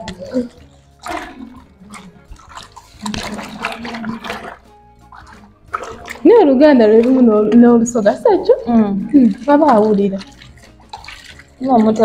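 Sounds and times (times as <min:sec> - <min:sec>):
hands sloshing water in basin: 0:00.0 - 0:12.0.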